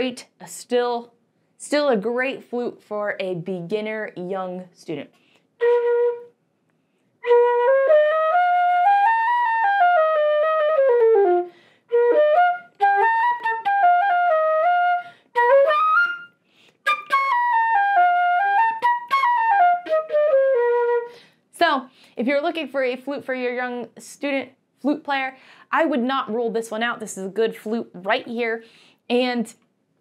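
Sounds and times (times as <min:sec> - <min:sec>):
solo flute melody: 0:05.6 - 0:06.4, 0:07.2 - 0:21.2.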